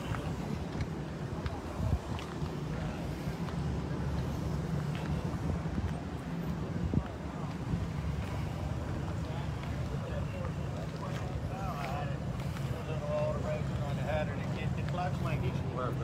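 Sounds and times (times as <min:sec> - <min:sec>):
distant voices chattering: 0:00.0 - 0:16.0
low engine rumble: 0:00.0 - 0:16.0.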